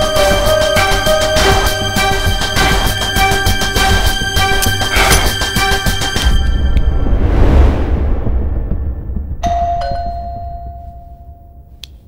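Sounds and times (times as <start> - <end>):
deep rumble of film score: 0.0 - 12.0.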